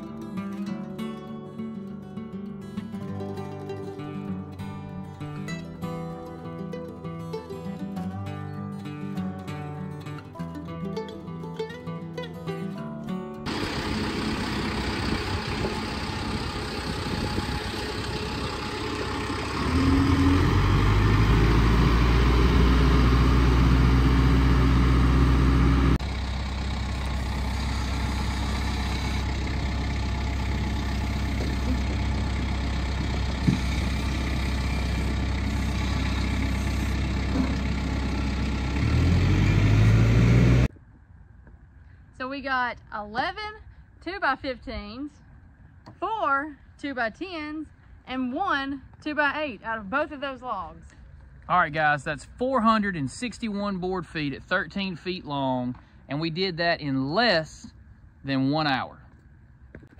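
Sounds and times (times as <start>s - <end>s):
machinery engines running: 13.5s - 40.7s.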